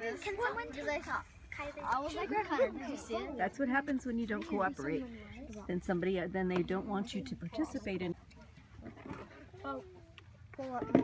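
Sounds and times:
children chattering and calling: 0:00.0 - 0:06.2, 0:07.0 - 0:11.0.

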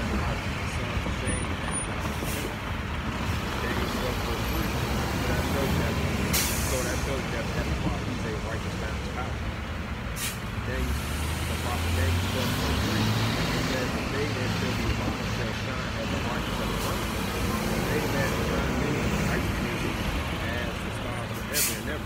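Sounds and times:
bus engine droning: 0:00.0 - 0:22.0
air brakes hissing: 0:06.3 - 0:07.2, 0:10.2 - 0:10.5, 0:21.5 - 0:22.0.

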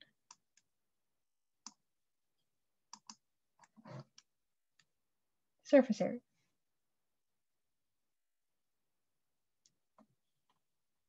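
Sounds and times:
faint computer mouse clicks: 0:02.9 - 0:03.2.

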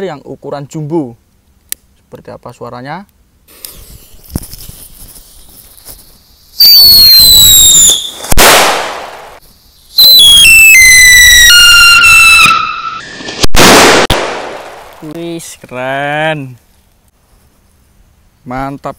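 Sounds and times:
firecracker hiss: 0:03.5 - 0:10.0
firecracker whistle falling in pitch: 0:06.6 - 0:08.6, 0:10.0 - 0:13.8
firecracker bang: 0:06.8 - 0:09.4, 0:13.2 - 0:14.9.

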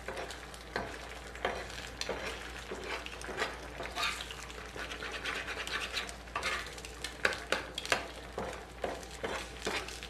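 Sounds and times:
faint sizzle: 0:00.0 - 0:10.0
metal spatula scraping griddle: 0:01.4 - 0:06.8, 0:08.8 - 0:10.0.

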